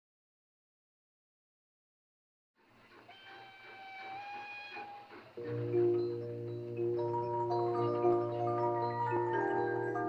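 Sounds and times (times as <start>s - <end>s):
steam locomotive whistle: 3.1s - 7.1s.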